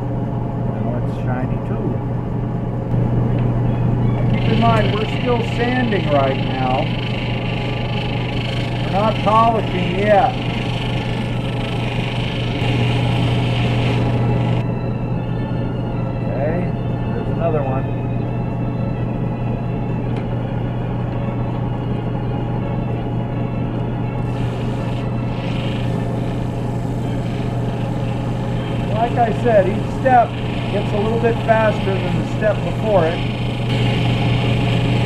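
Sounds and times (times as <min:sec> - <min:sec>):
sander motor hum: 0:02.9 - 0:14.7, 0:23.8 - 0:35.0.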